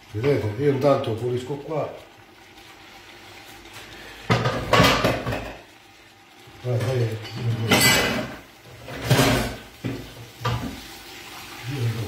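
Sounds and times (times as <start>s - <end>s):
pot simmering faintly: 0.0s - 7.6s
kitchen utensils and pans clattering: 4.2s - 5.7s, 6.7s - 10.9s.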